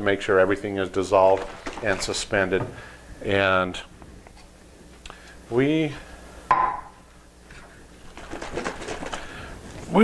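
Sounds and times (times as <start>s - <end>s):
liquid sloshing in jug: 1.2s - 2.7s.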